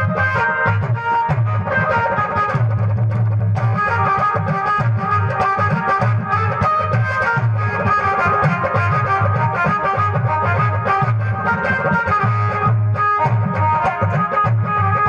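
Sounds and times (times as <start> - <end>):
harmonium melody: 0.0 - 15.0.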